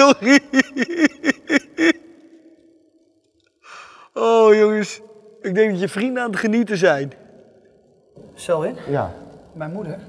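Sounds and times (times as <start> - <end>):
man laughing: 0.0 - 2.2
breathy sigh: 3.7 - 4.1.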